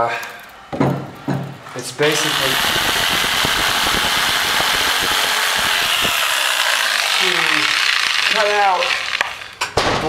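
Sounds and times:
electric jigsaw motor buzzing: 0:02.0 - 0:09.6
saw blade rattling through wood: 0:04.6 - 0:09.7.

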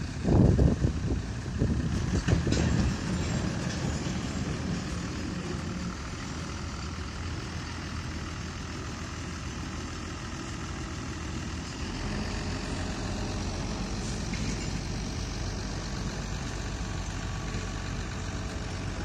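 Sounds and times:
tractor diesel engine running: 0:00.0 - 0:19.0.

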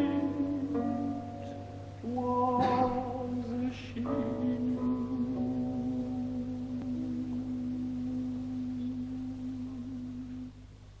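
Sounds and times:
softly ringing lute: 0:00.0 - 0:10.5.

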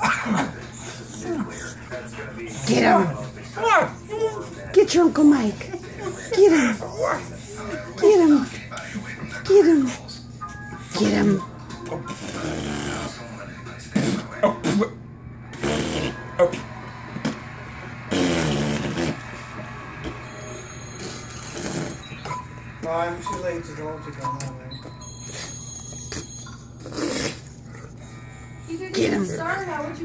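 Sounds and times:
dog whimpering grumbles: 0:00.0 - 0:01.8, 0:02.5 - 0:04.6, 0:06.0 - 0:08.6, 0:10.9 - 0:13.3, 0:21.2 - 0:22.3.

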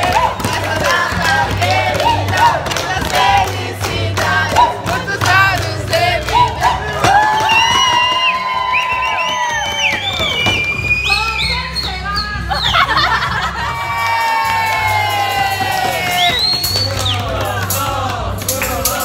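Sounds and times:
group singing loudly: 0:00.0 - 0:07.7, 0:14.9 - 0:19.0
people cheering: 0:00.0 - 0:18.4
background music: 0:00.0 - 0:19.0.

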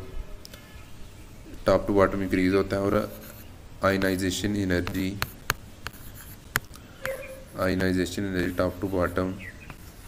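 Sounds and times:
pen scratching on hard surface: 0:03.0 - 0:04.2, 0:04.8 - 0:10.0.

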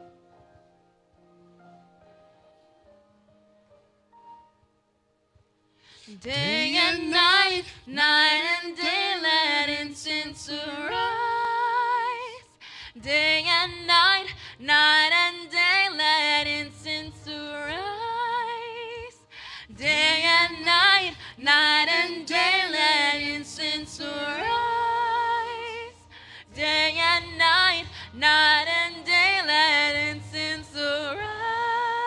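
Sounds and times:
woman singing into a microphone: 0:06.1 - 0:32.0.

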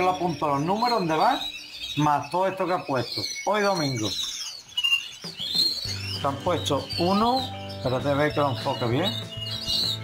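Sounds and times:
canaries chirping: 0:00.0 - 0:10.0.

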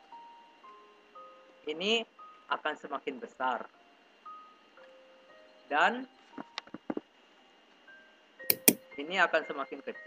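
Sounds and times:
faint steady background tones: 0:00.0 - 0:10.0
computer mouse clicks: 0:08.5 - 0:08.8.

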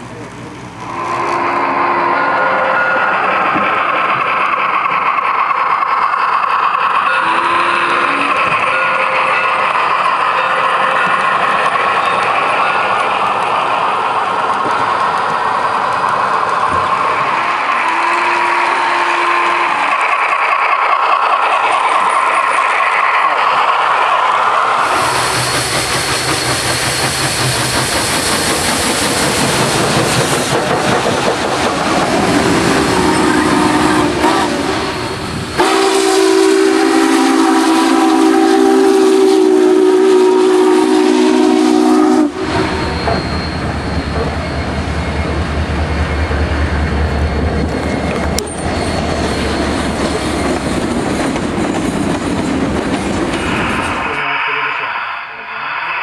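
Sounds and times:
steam train running: 0:00.0 - 0:56.0
steam whistle blasts: 0:00.9 - 0:03.2, 0:07.1 - 0:09.3, 0:17.6 - 0:20.0, 0:32.9 - 0:43.6.

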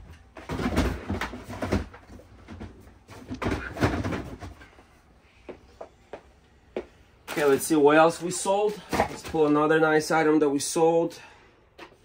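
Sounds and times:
plastic tote scraping and knocking: 0:00.4 - 0:04.6.

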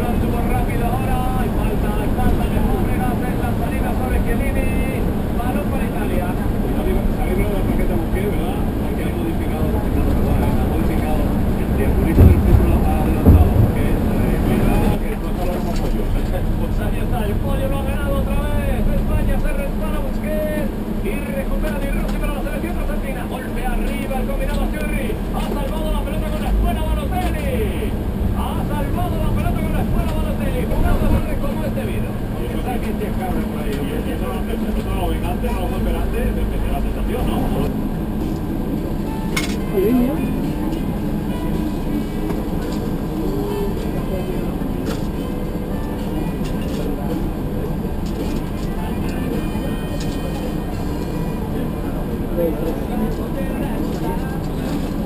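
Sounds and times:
bus engine and road rumble: 0:00.0 - 0:55.0
loud thumps: 0:12.0 - 0:15.0.

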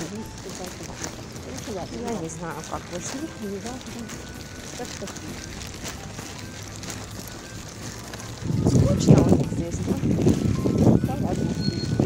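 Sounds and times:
street background: 0:00.0 - 0:12.0
wind buffeting microphone: 0:08.2 - 0:12.0.

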